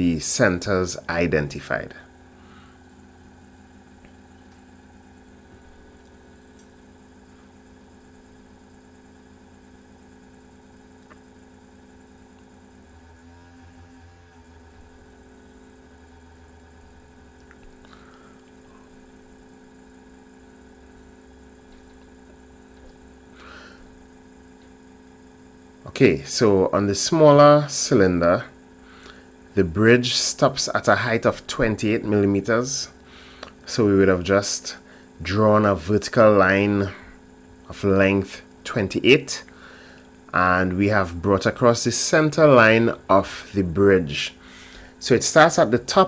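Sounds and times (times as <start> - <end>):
low electrical hum: 0.0 - 46.0.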